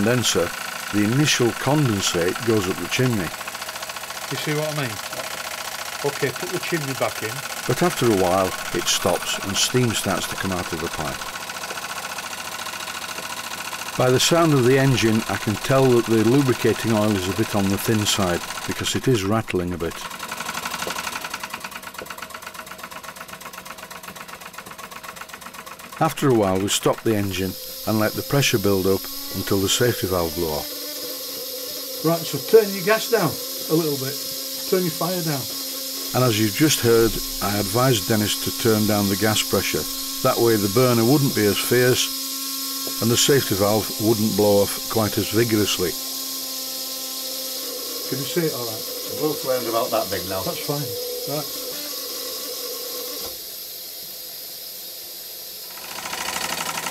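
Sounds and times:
steam engine running: 0:00.0 - 0:56.9.

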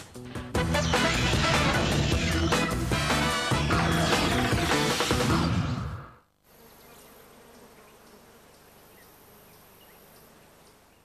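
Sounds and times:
tv bumper music: 0:00.2 - 0:06.1
faint electrical buzz and hiss: 0:06.3 - 0:11.0.

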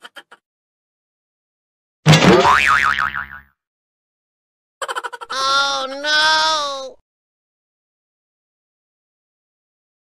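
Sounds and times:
cartoon boing: 0:02.1 - 0:03.5.

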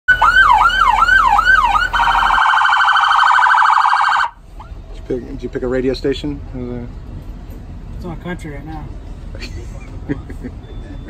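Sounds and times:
electronic police siren: 0:00.1 - 0:04.4.

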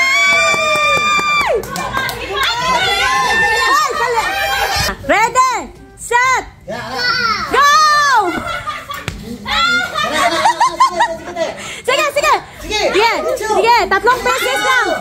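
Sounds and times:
people calling out and laughing: 0:02.1 - 0:05.6, 0:07.0 - 0:15.0.

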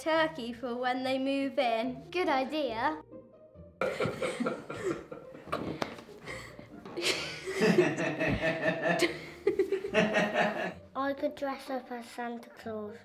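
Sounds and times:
girls giggling: 0:03.8 - 0:10.8.

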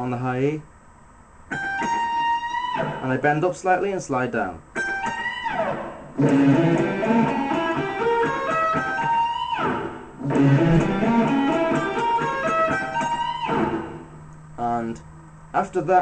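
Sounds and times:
electric guitar run: 0:04.8 - 0:14.1.

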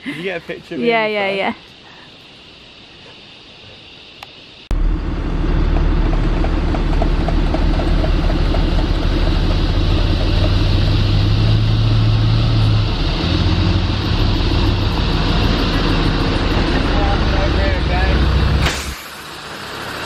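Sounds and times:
vehicle engine running: 0:04.7 - 0:20.0.

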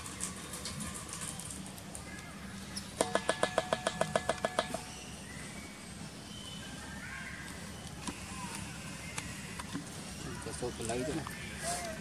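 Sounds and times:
faint outdoor background: 0:00.0 - 0:12.0.

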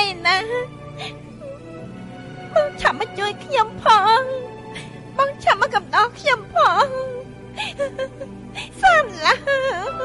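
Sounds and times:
soft musical accompaniment: 0:00.0 - 0:10.0.

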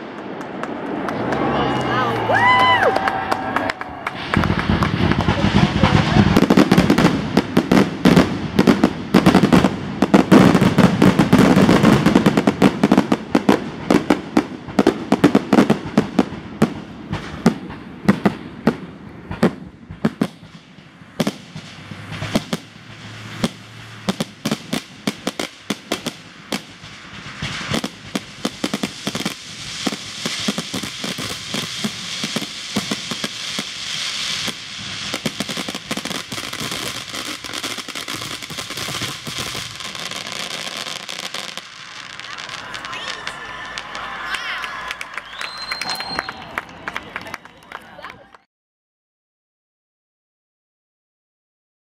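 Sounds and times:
fireworks bursting and crackling: 0:00.0 - 0:48.1.

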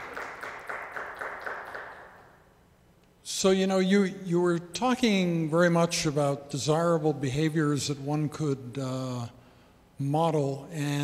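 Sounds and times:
small audience applauding: 0:00.0 - 0:02.3.

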